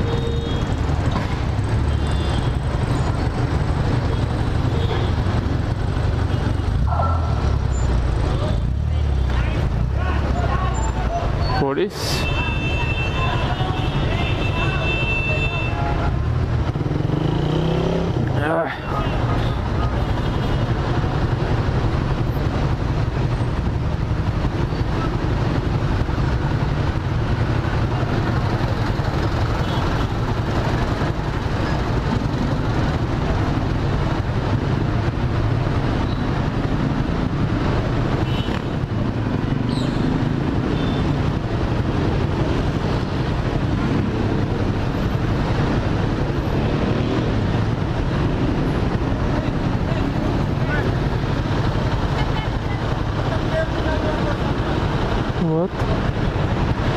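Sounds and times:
rumble of surrounding vehicles: 0.0s - 56.9s.

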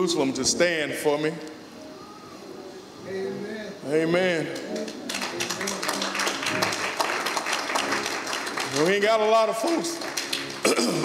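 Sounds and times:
crowd applauding: 4.6s - 11.0s.

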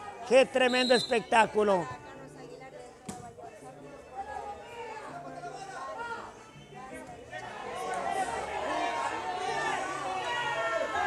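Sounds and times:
faint murmur of spectators: 0.0s - 11.0s.

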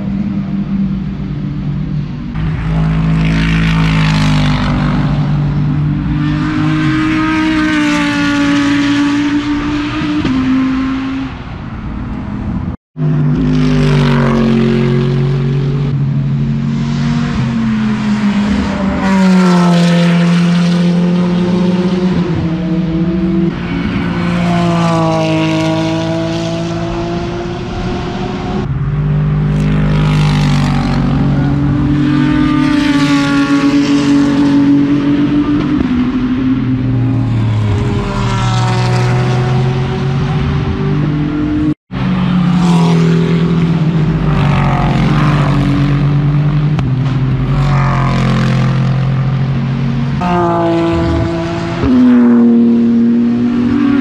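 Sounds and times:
race cars passing: 0.0s - 54.0s.

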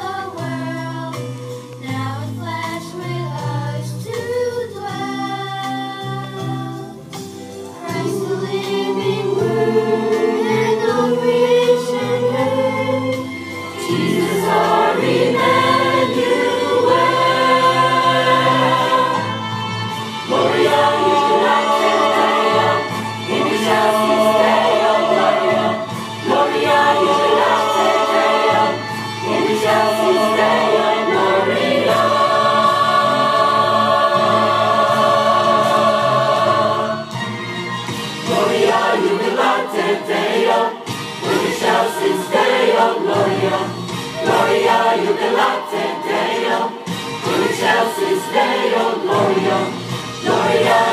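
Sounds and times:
mixed choir singing: 0.0s - 50.9s.

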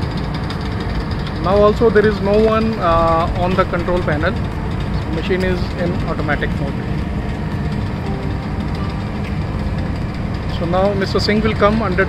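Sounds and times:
diesel generator droning: 0.0s - 12.0s.

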